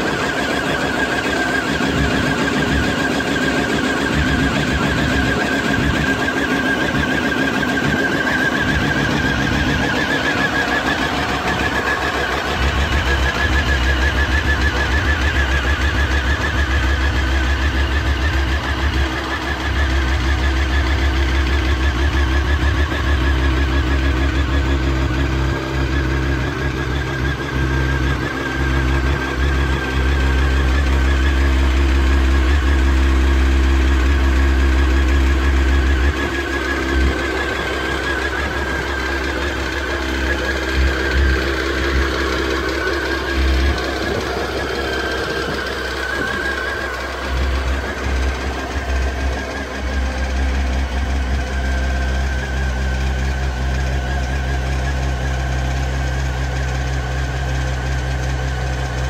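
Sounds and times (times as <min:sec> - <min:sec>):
motorcycle engine idling: 0:00.0 - 0:59.0.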